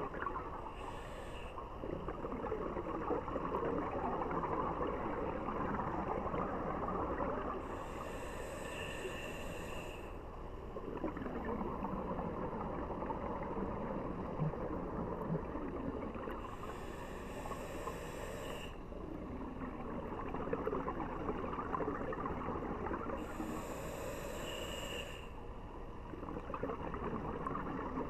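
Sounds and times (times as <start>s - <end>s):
exhaled bubbles crackling: 0.0s - 0.7s, 1.8s - 7.7s, 10.8s - 16.5s, 19.2s - 23.3s, 26.1s - 28.0s
regulator hissing inhale: 0.7s - 1.7s, 7.6s - 10.2s, 16.4s - 19.0s, 23.2s - 25.4s.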